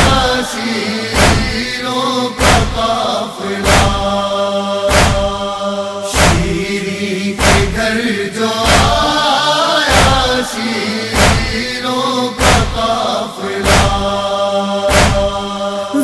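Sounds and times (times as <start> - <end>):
chorus of voices chanting: 0.0 - 16.0
chest-beating strikes: 1.2 - 1.6, 4.9 - 5.4, 6.1 - 6.6, 11.2 - 11.6.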